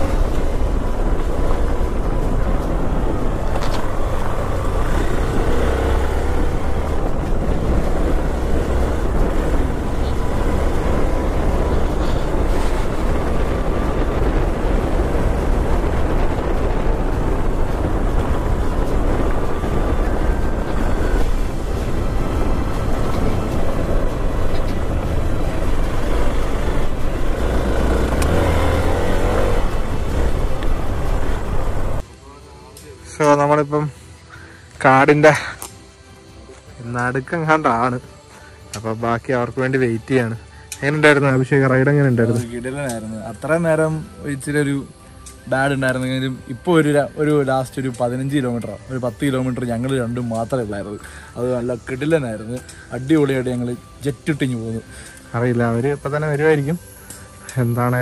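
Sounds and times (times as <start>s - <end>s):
motorcycle engine: 0.0s - 32.4s
wind and road noise: 0.0s - 58.0s.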